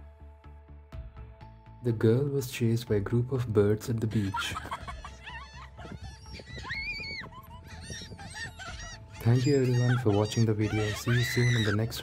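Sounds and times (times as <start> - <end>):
gulls calling: 4.2 - 12.0.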